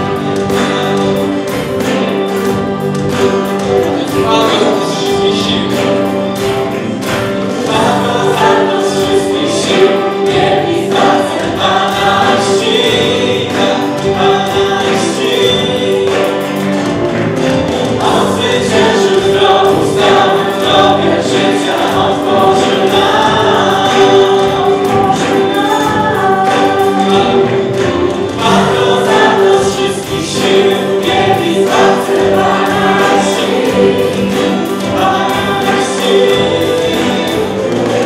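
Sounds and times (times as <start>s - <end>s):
acoustic guitar: 0.0s - 38.0s
keyboard: 0.0s - 38.0s
strings: 0.0s - 38.0s
voices singing together: 0.0s - 38.0s.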